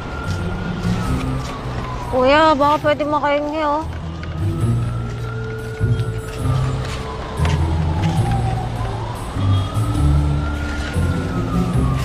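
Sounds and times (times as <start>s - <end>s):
wailing siren: 0.0s - 12.0s
background music with deep bass: 3.8s - 12.0s.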